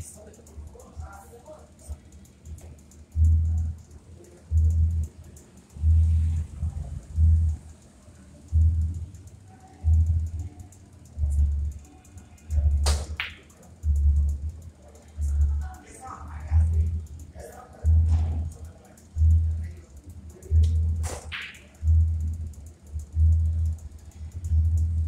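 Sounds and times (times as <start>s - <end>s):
music with slow bass beat: 1.8s - 25.0s
billiard balls clicking: 12.5s - 14.6s, 16.7s - 25.0s.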